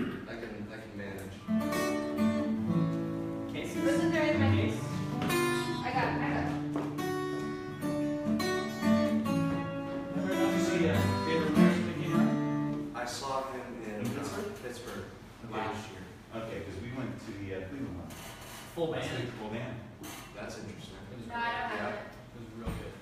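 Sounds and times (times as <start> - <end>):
acoustic guitar strumming: 1.4 - 13.0.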